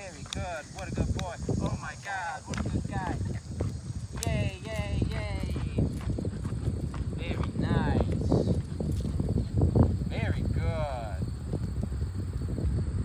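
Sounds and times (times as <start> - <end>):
footsteps on asphalt: 0.0 - 12.8.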